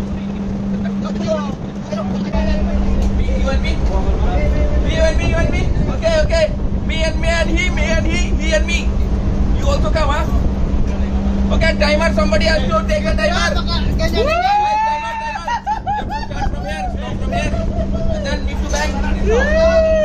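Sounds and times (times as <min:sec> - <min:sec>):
men talking and calling out: 0:00.0 - 0:20.0
steady low hum: 0:00.0 - 0:20.0
man's long drawn-out shout: 0:14.2 - 0:15.8, 0:19.2 - 0:20.0.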